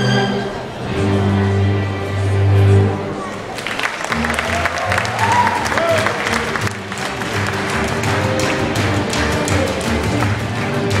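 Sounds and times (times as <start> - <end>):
acoustic ensemble music: 0.0 - 11.0
audience clapping: 3.5 - 11.0.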